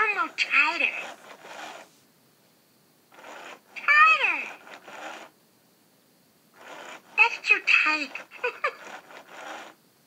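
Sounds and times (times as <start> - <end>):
toy voice gliding down: 3.8 - 4.7, 7.2 - 9.0.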